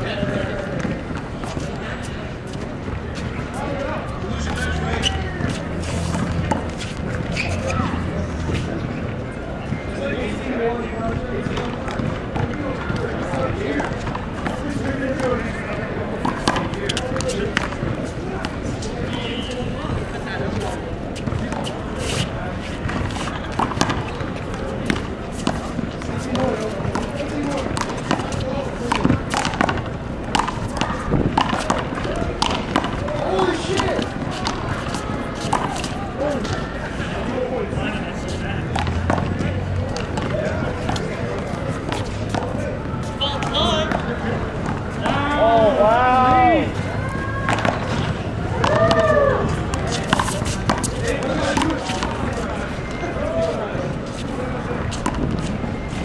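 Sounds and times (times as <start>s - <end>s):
voices chattering: 0.0s - 56.0s.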